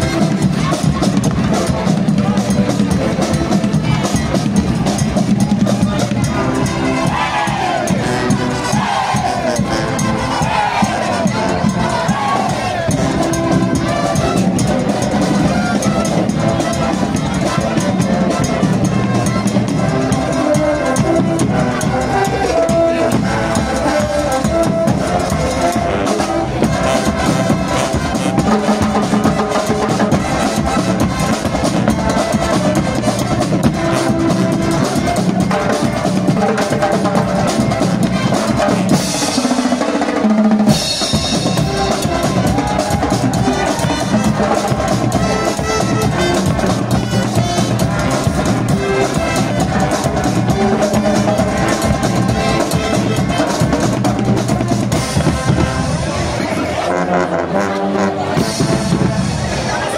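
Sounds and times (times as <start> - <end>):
bass drum beat: 0.0 - 39.7, 40.5 - 56.5
marching band playing: 0.0 - 59.9.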